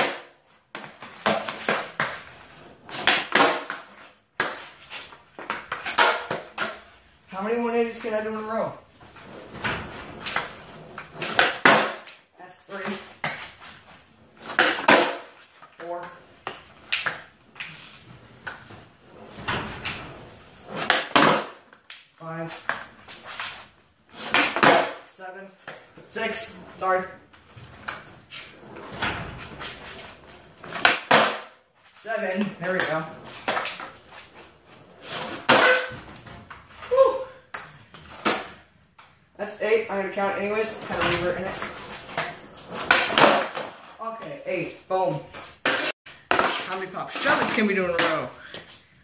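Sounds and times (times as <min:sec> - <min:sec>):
skateboard landing on concrete: 0:00.0 - 0:06.9, 0:09.2 - 0:12.2, 0:12.8 - 0:13.7, 0:14.4 - 0:17.8, 0:19.4 - 0:26.0, 0:28.9 - 0:31.6, 0:32.6 - 0:34.0, 0:35.0 - 0:36.7, 0:37.5 - 0:38.7, 0:40.8 - 0:43.9, 0:45.3 - 0:48.3
person speaking: 0:07.3 - 0:08.9, 0:12.4 - 0:13.2, 0:15.8 - 0:16.3, 0:25.1 - 0:27.2, 0:31.9 - 0:33.3, 0:39.4 - 0:41.9, 0:44.0 - 0:45.4, 0:46.5 - 0:48.6.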